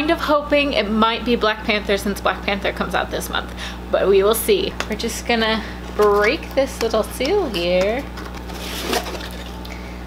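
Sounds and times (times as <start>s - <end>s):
rustling and scraping of cardboard: 8.4s - 9.6s.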